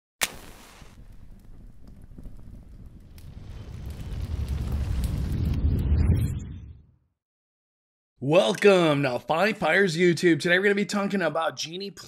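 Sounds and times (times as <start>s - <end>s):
low fire-like rumble: 0.4s - 6.9s.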